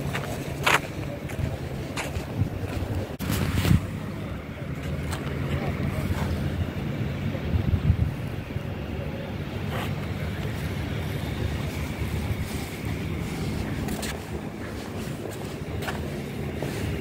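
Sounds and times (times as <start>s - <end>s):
wind noise on microphone: 0.0s - 4.3s, 7.3s - 8.7s.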